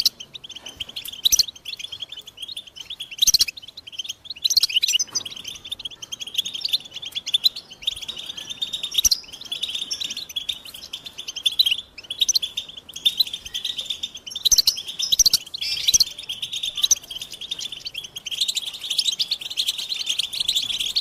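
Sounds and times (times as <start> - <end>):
finch singing: 0.0 - 21.0.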